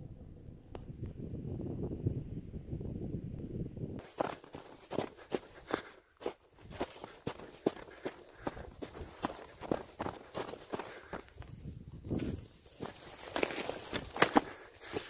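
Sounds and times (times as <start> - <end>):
wind rush on microphone: 0.0 - 5.1, 8.4 - 15.0
footsteps crunching on rock and snow: 4.0 - 15.0
person breathing heavily: 4.8 - 11.7, 14.1 - 15.0.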